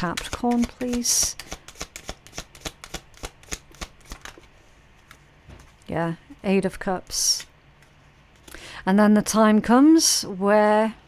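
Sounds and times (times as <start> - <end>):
cards being shuffled: 0.0 - 5.8.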